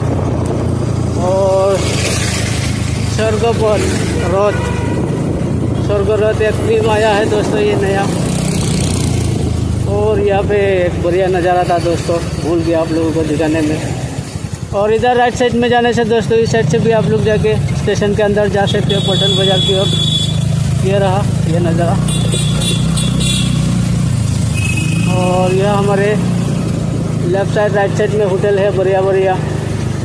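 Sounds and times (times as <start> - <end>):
road noise: 0.0 - 30.0
vehicle engine drone: 0.0 - 30.0.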